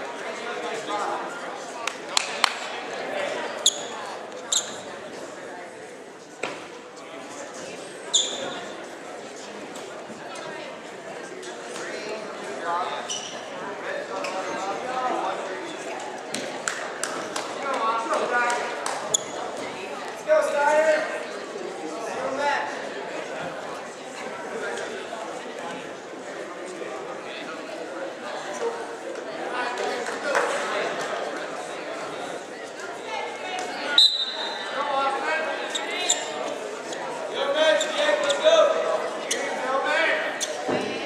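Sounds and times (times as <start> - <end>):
voices echoing in gym: 0.0 - 41.0
voices shouting in echoing gym: 32.0 - 41.0
referee whistle blast: 34.0 - 34.7.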